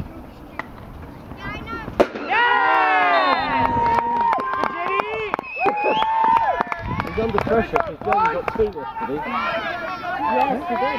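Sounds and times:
ball shot crack: 0:02.0 - 0:02.4
players shouting in celebration: 0:02.3 - 0:10.9.

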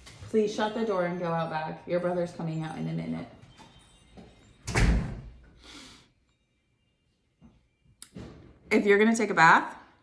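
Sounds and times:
door slamming shut: 0:04.7 - 0:05.3.

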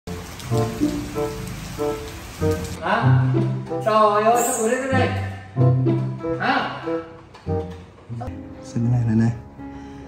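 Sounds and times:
steady rain falling: 0:00.1 - 0:03.6.

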